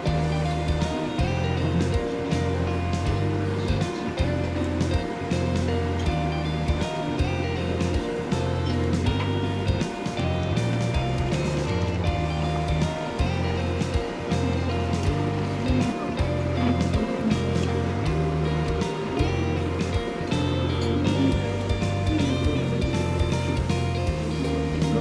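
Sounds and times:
music with beat and bass: 0:00.0 - 0:25.0.

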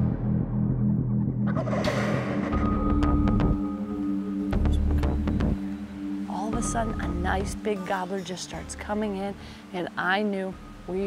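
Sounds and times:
background music with beat: 0:00.0 - 0:07.7.

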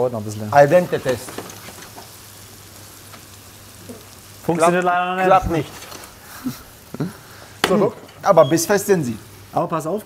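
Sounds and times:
mushrooms sizzling in a pan: 0:00.0 - 0:10.0.

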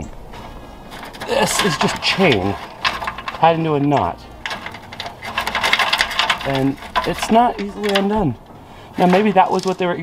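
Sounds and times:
small chain links clinking: 0:00.8 - 0:10.0.

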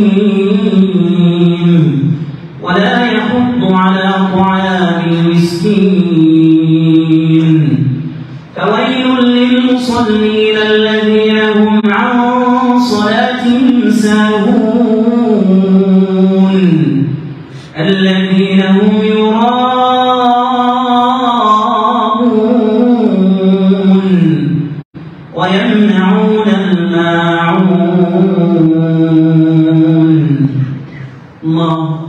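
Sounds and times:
man chanting through microphone: 0:00.0 - 0:32.0.

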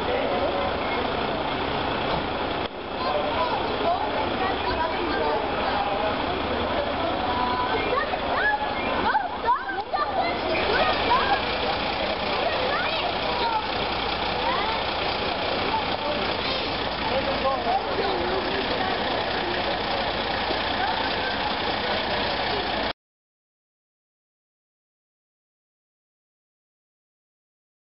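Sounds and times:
fire engine idling: 0:00.0 - 0:22.9
people talking: 0:00.0 - 0:22.9.

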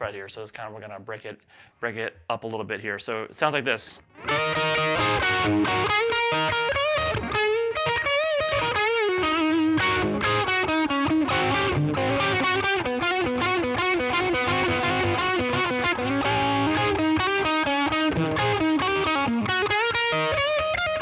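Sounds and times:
electric guitar blues lead: 0:04.1 - 0:21.0.

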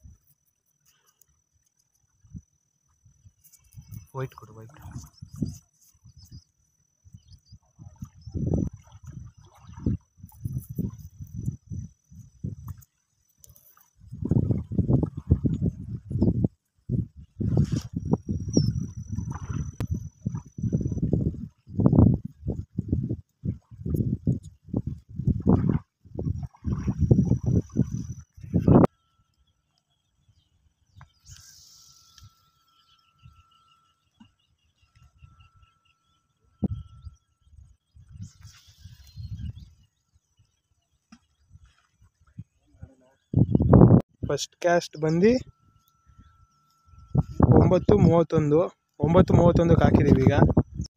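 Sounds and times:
wind buffeting microphone: 0:03.8 - 0:06.4, 0:07.1 - 0:12.8, 0:14.0 - 0:28.9, 0:36.6 - 0:39.8, 0:42.3 - 0:44.3, 0:47.0 - 0:50.9.

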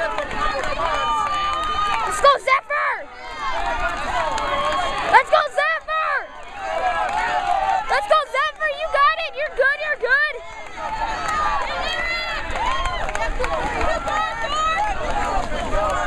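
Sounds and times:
spectators shouting: 0:00.0 - 0:16.0.

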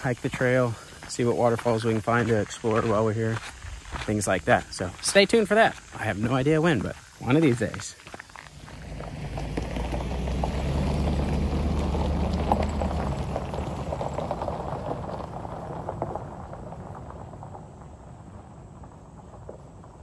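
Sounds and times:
tyres crunching over gravel: 0:00.0 - 0:20.0
vehicle engine rumble: 0:00.0 - 0:20.0.

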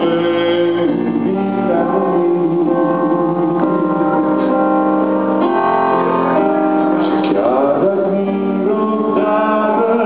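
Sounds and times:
man singing into a microphone: 0:00.0 - 0:04.8, 0:07.1 - 0:10.0
guitar chords: 0:00.0 - 0:10.0
keyboard chords: 0:00.0 - 0:10.0.

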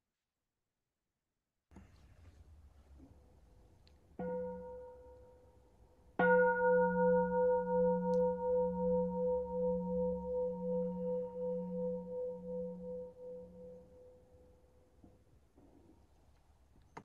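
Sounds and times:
singing bowl ringing: 0:04.2 - 0:05.6, 0:06.2 - 0:14.6.

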